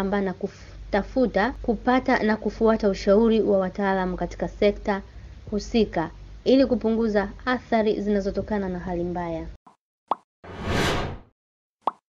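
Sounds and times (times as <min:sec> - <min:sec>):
whoosh: 0:10.5 - 0:11.3.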